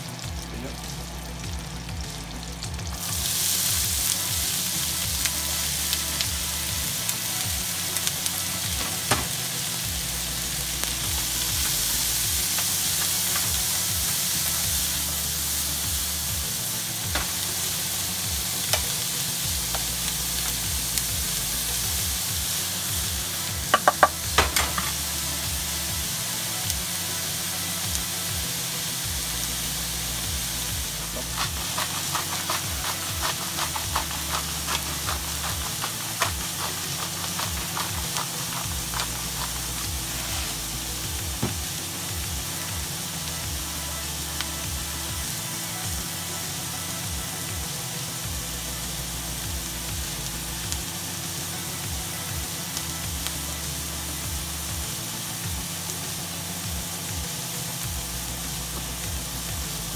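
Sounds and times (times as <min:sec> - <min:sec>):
onions sizzling in butter: 0:00.0 - 0:59.9
spoon knocking against pan: 0:23.7 - 0:24.9
wooden spoon stirring in pan: 0:23.7 - 0:25.0, 0:31.0 - 0:41.7.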